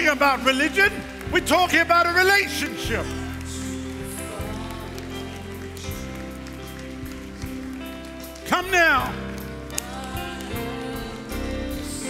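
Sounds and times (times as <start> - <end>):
soft keyboard chords: 0.0 - 12.0.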